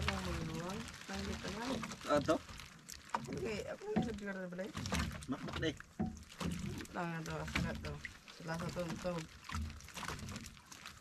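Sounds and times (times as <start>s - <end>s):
people talking: 0.0s - 2.4s, 3.3s - 5.8s, 6.8s - 9.3s.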